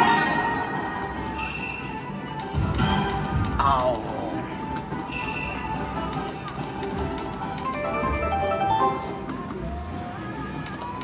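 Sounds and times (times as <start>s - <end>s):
slot machine music and chimes: 0.0s - 9.3s
casino background noise: 0.0s - 11.0s.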